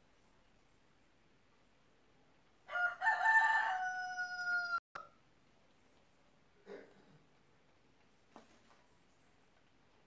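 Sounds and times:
rooster crowing: 2.7s - 4.8s.

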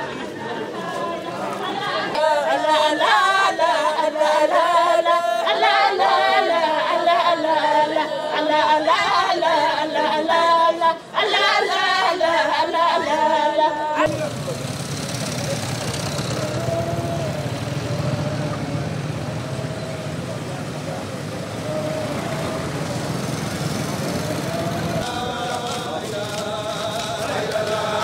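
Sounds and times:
women singing a cappella chant: 0.0s - 14.2s, 15.4s - 28.0s
crowd chanting: 0.0s - 28.0s
crowd voices: 0.0s - 28.0s
motorbike engines: 0.0s - 28.0s.

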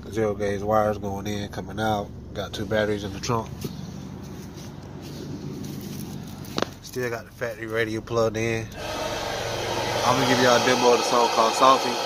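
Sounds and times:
steady low hum: 0.0s - 12.0s
faint rustling: 2.5s - 7.8s.

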